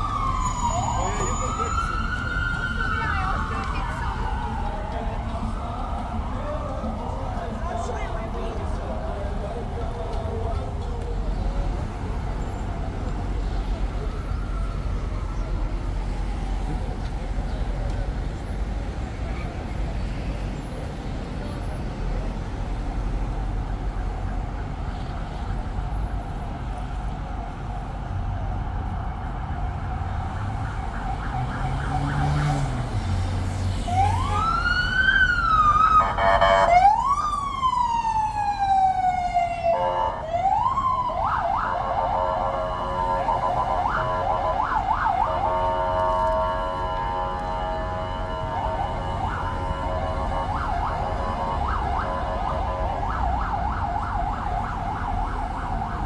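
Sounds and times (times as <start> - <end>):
emergency vehicle siren: 0.0 - 56.0
low street traffic rumble: 0.0 - 56.0.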